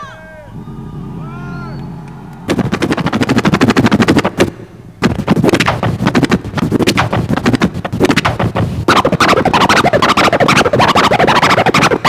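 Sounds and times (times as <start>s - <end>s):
turntable scratching: 2.2s - 12.0s.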